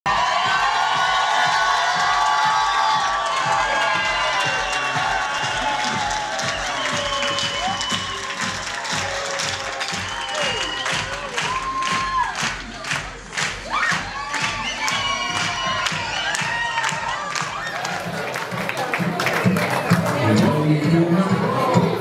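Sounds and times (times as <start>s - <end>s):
crowd cheering: 0.0s - 22.0s
crowd clapping: 0.0s - 22.0s
music playing: 0.1s - 22.0s.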